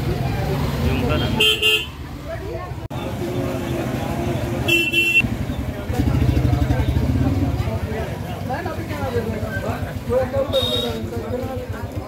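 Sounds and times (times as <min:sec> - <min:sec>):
crowd voices: 0:00.0 - 0:12.0
vehicle horn tooting: 0:04.7 - 0:05.2, 0:10.5 - 0:11.0.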